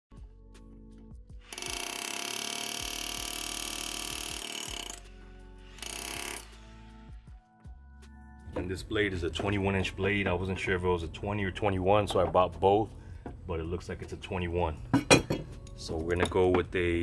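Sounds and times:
background music: 0.1 - 17.0
hammer drill hammering on bolt: 1.4 - 5.1, 5.8 - 6.6.

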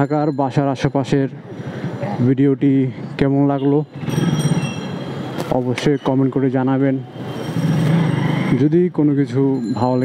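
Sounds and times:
motorcycle rumbling at low speed: 7.2 - 9.2.

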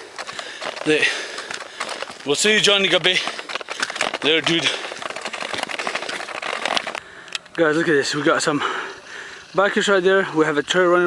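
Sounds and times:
footsteps on dirt trail: 0.0 - 10.4.

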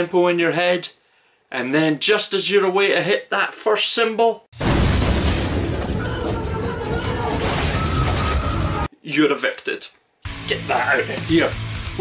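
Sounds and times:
wall crashing and rumbling: 4.6 - 8.9
music: 10.2 - 12.0.

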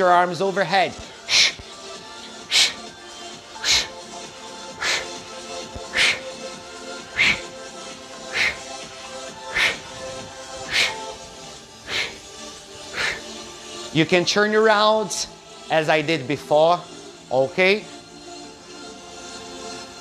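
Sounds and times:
background music: 0.0 - 20.0
sharp exhales into microphone: 7.2 - 7.5, 10.7 - 11.0.

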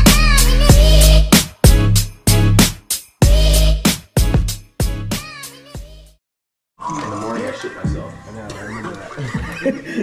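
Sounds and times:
music playing: 0.0 - 6.2.

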